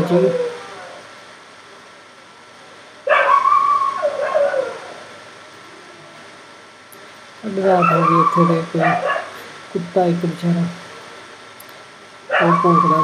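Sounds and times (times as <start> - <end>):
dog yelping barks: 3.1 - 5.0, 7.8 - 9.4.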